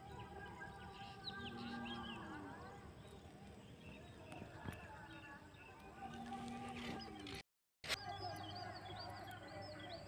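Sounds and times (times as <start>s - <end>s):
birds chirping and whistling: 0.0s - 10.0s.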